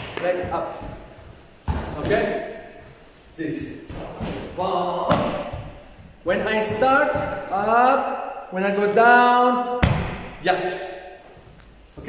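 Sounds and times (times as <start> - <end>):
man talking: 0.0 - 1.1, 1.7 - 5.6, 6.2 - 9.8, 10.4 - 11.2
bare feet thudding on mats: 0.0 - 3.1, 3.8 - 7.6, 9.8 - 10.4.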